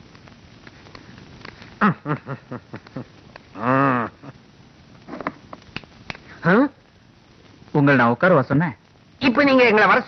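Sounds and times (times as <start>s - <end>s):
man's long drawn-out call: 3.6s - 4.3s.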